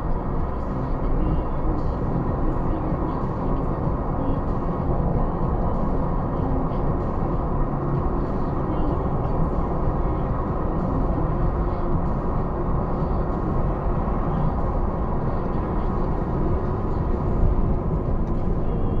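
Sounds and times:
car interior road rumble: 0:00.0 - 0:19.0.

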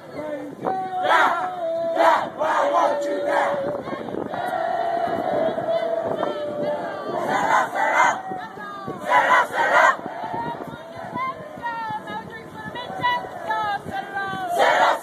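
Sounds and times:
cadets chanting in unison: 0:01.0 - 0:08.3, 0:09.0 - 0:11.3, 0:12.8 - 0:15.0.

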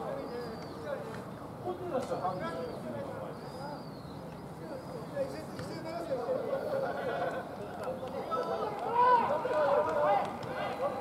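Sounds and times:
players shouting: 0:08.2 - 0:11.0.

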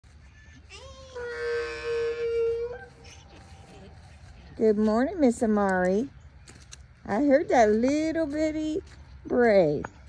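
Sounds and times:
donkey braying: 0:00.2 - 0:03.9.

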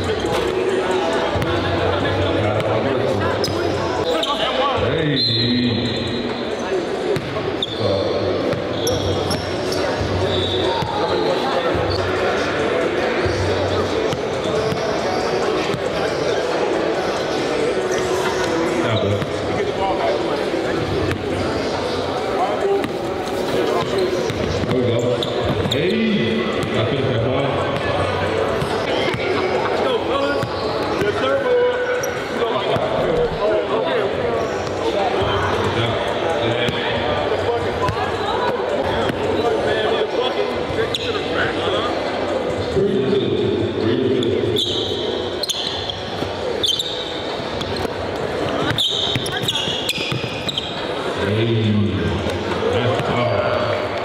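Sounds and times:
onlookers chattering: 0:00.0 - 0:54.0.

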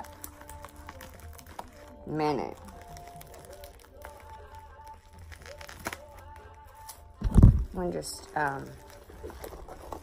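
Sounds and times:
plastic bag crinkling: 0:00.0 - 0:10.0
soft background music: 0:00.0 - 0:10.0.

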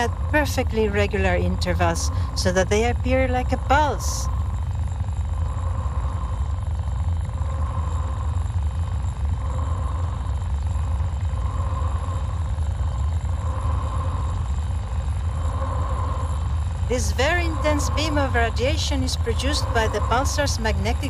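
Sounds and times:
deep rumble: 0:00.0 - 0:21.0
pulsing mid-pitched tone: 0:00.0 - 0:21.0.

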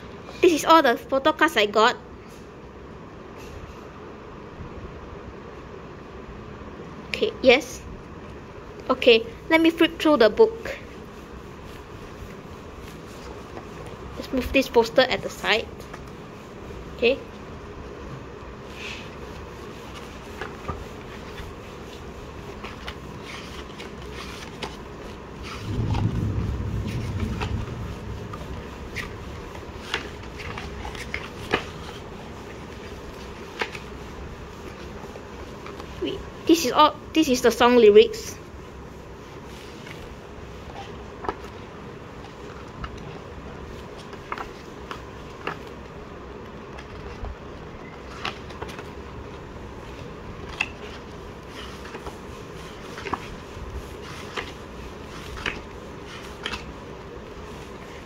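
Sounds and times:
steady background hiss: 0:00.0 - 0:58.0
book pages turning: 0:18.7 - 0:26.1, 0:28.3 - 0:36.0, 0:39.4 - 0:58.0.

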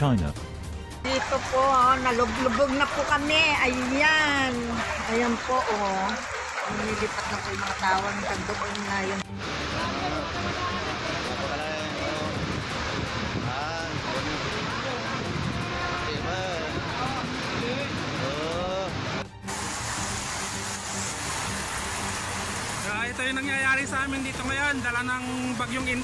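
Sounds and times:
running floodwater: 0:01.0 - 0:26.0
heavy rain: 0:01.1 - 0:26.0.

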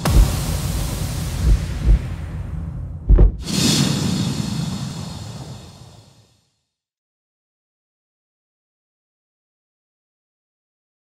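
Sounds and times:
deep impact hits: 0:00.0 - 0:03.6
low booms: 0:00.0 - 0:06.1
rising swoosh: 0:00.0 - 0:06.3
whooshing swell: 0:00.0 - 0:06.3.

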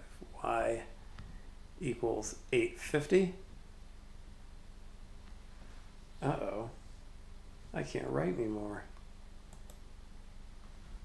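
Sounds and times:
low electrical hum: 0:00.0 - 0:11.0
computer mouse double-click: 0:09.5 - 0:09.8.

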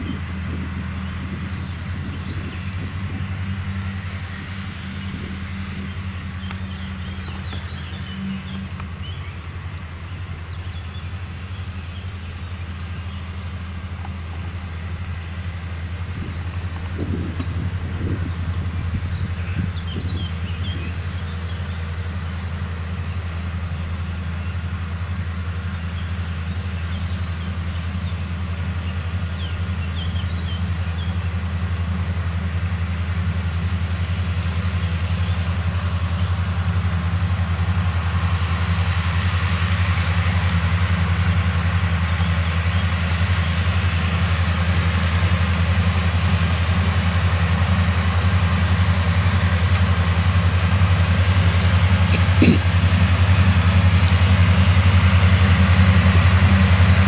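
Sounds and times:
crickets chirping: 0:00.0 - 0:57.0
distant tractor mowing grass: 0:00.0 - 0:57.0.

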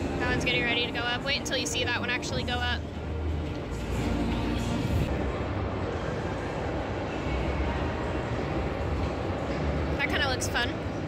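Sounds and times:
crowd noise: 0:00.0 - 0:11.0
faint background music: 0:00.0 - 0:11.0.

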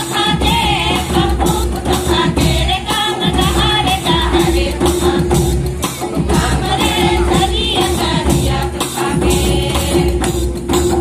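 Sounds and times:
group singing folk song: 0:00.0 - 0:11.0
percussion beats: 0:00.0 - 0:11.0.

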